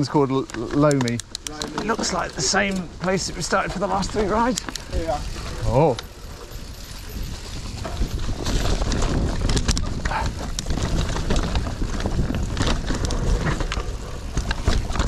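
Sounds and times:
bike clicking and rattling: 0.0 - 15.0
bike tyres rumbling over dirt: 0.0 - 15.0.

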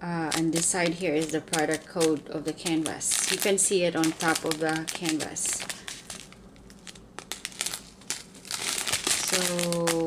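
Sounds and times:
plastic packets crinkling: 0.1 - 10.0.

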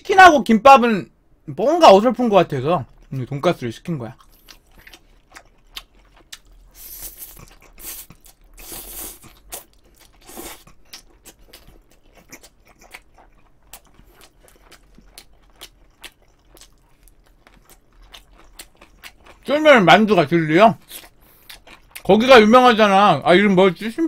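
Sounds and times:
wet chewing of noodles: 4.2 - 19.6, 20.8 - 22.1.

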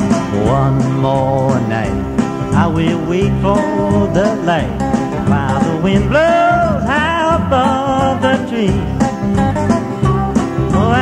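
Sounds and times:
country band string instruments: 0.0 - 11.0
person singing: 0.2 - 9.2, 10.6 - 11.0.

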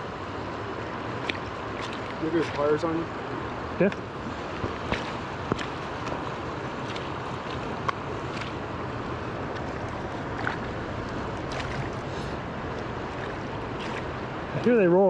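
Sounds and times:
river rushing over rocks: 0.0 - 15.0.

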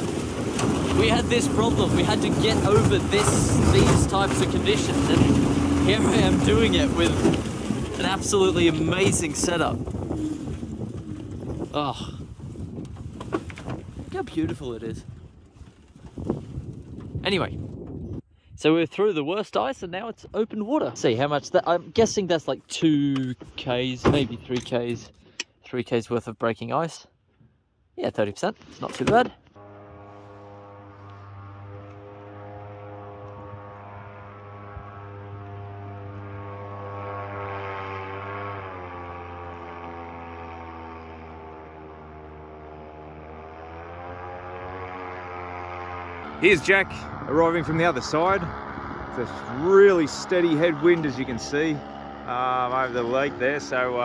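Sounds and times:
electric airboat running: 0.0 - 17.2, 29.5 - 54.0
wind on microphone: 0.0 - 18.6, 46.2 - 51.4.

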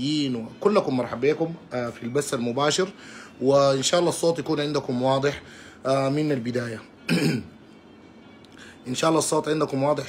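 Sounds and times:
man clearing his throat: 7.1 - 7.6.

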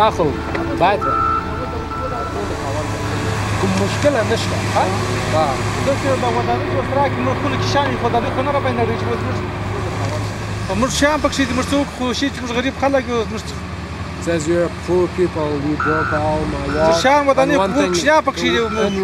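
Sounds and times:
bulldozer diesel engine droning: 0.0 - 19.0
men's voices: 0.0 - 19.0.

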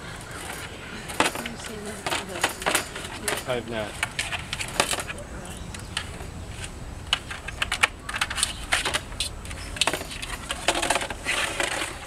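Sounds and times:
claws clicking on hollow plastic: 0.4 - 12.0.

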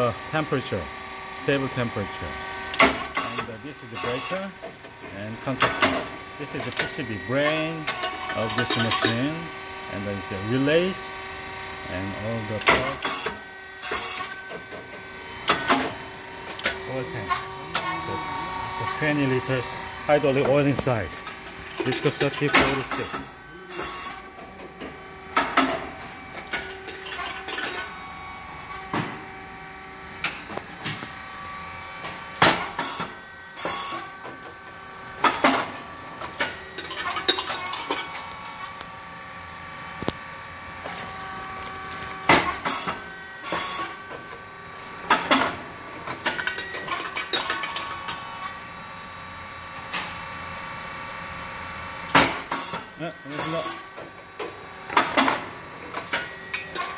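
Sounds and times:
steady drive whine: 14.9 - 27.0
loud sharp pop of machine: 32.4 - 33.0, 42.3 - 42.8, 52.1 - 52.8.

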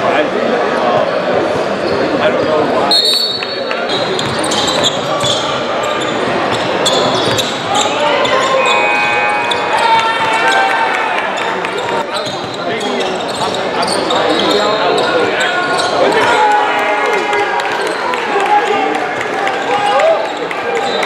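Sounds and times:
chatter of players and spectators: 0.0 - 21.0
shoe squeaks: 1.8 - 10.8, 11.4 - 16.2.

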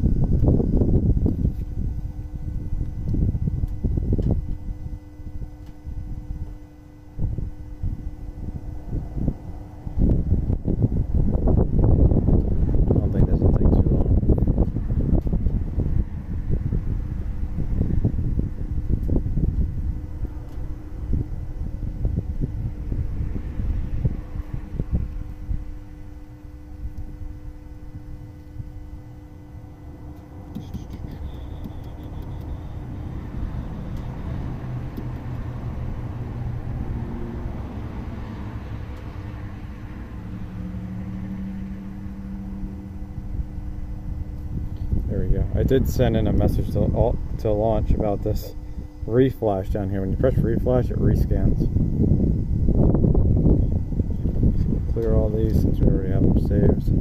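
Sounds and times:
faint low hum: 0.0 - 57.0
wind rumbling on microphone: 0.0 - 57.0.

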